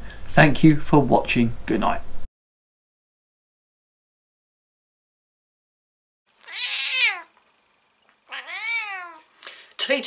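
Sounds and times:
cat meowing: 0:06.4 - 0:07.3, 0:08.3 - 0:09.3.

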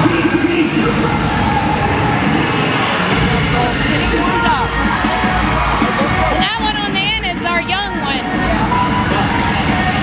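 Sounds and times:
crowd noise: 0:00.0 - 0:10.0
loud dance music over speakers: 0:00.0 - 0:10.0.

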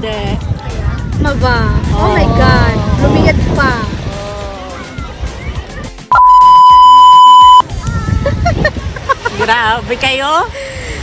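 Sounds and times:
high-pitched censor bleep: 0:06.1 - 0:07.6.

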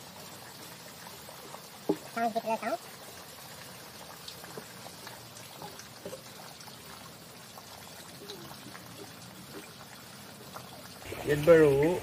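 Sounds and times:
hissing background noise: 0:06.7 - 0:12.0.

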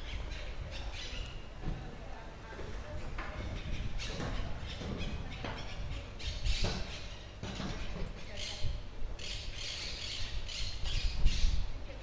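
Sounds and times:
low street rumble: 0:00.0 - 0:12.0
bird harsh calls: 0:03.5 - 0:11.8.

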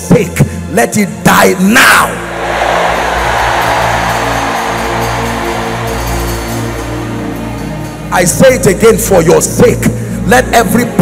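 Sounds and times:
keyboard sustained chords: 0:02.1 - 0:11.0
rushing noise: 0:02.2 - 0:07.9.

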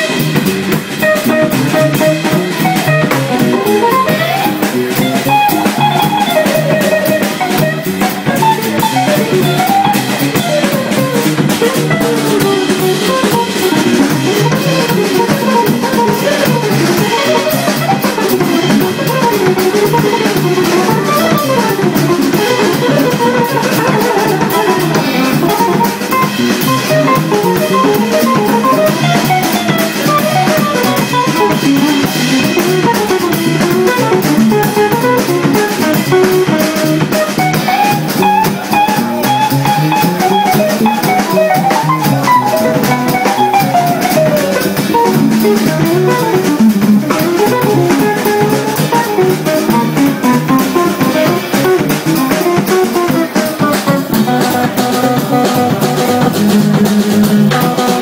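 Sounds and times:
bass: 0:00.0 - 0:58.0
drum kit: 0:00.0 - 0:58.0
electric guitar melodic runs: 0:00.0 - 0:58.0.

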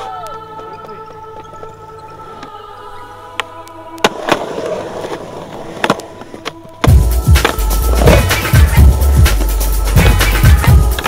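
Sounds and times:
skateboard wheels rolling on concrete: 0:03.4 - 0:11.0.

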